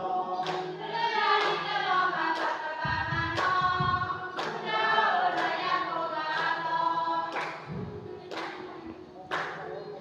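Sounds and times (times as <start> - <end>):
group of voices singing: 0.0 - 10.0
hand claps: 0.4 - 0.8, 1.4 - 1.7, 2.4 - 2.6, 3.2 - 4.7, 5.3 - 5.7, 6.3 - 6.6, 7.3 - 9.7.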